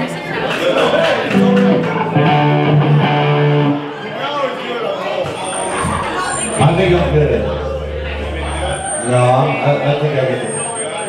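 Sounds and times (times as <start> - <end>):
voices in room: 0.0 - 11.0
electric guitar single notes: 1.4 - 3.9, 5.5 - 10.4.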